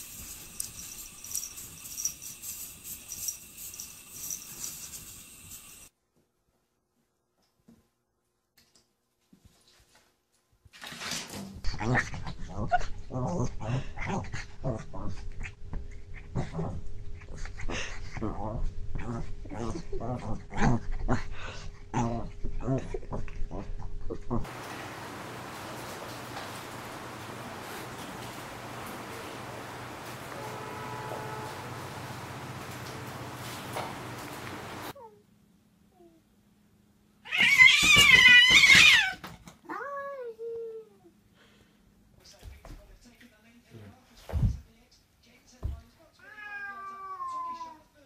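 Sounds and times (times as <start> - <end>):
small dog growling and yapping: 11.6 - 24.5
cat yowling and meowing: 37.2 - 40.4, 46.2 - 47.8.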